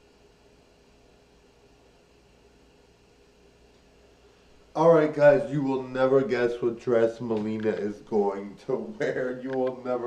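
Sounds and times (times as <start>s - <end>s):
faint steady hiss: 0.0s - 10.0s
faint steady hum: 0.0s - 10.0s.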